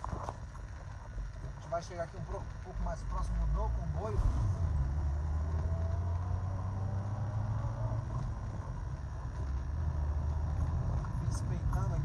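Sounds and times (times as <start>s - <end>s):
car engine and road rumble: 0.0s - 12.0s.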